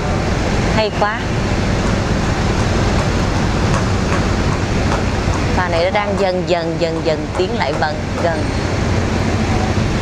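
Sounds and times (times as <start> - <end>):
ferry engine drone: 0.0 - 10.0
wind and water noise: 0.0 - 10.0.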